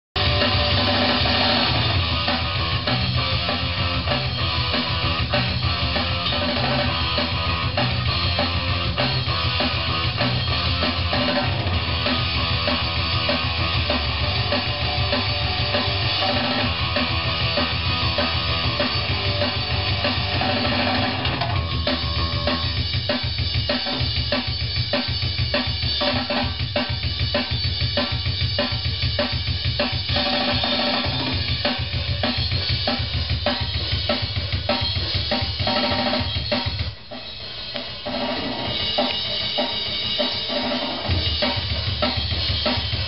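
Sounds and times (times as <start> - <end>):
drum kit: 0.1 - 43.0
hardcore punk music: 0.1 - 43.0
distorted guitars: 0.2 - 43.0.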